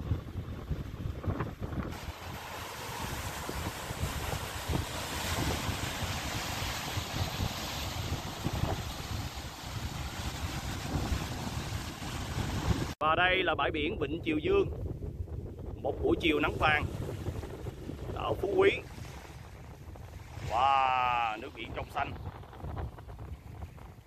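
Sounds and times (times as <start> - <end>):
surf breaking over rocks: 0.0 - 13.0, 15.9 - 24.0
wind buffeting microphone: 0.0 - 24.0.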